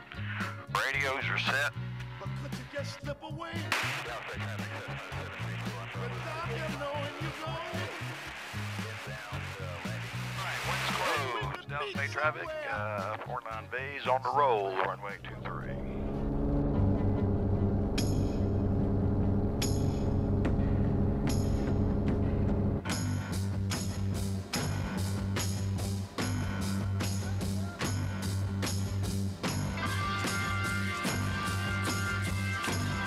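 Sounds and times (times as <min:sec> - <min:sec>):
light airplane engine drone: 0:15.2 - 0:22.9
music with steady beat: 0:22.9 - 0:33.0.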